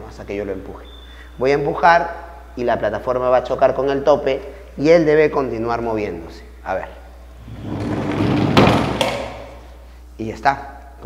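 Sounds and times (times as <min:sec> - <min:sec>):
caster wheels rolling on plywood: 0:07.4 - 0:09.6
wooden knock: 0:07.6 - 0:09.6.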